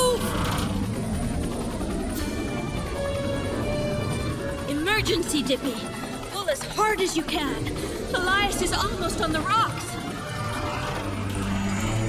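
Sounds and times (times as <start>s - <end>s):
boat engine drone: 0.0s - 12.0s.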